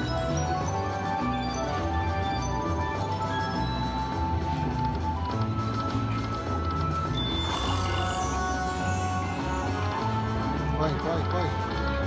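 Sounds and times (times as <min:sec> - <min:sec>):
slot machine bonus music: 0:00.0 - 0:12.0.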